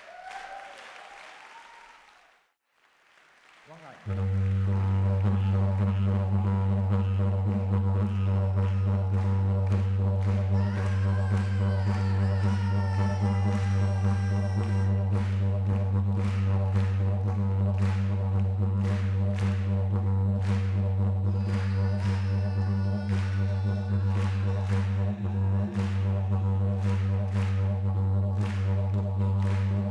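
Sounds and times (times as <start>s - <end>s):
didgeridoo drone: 4.1s - 29.9s.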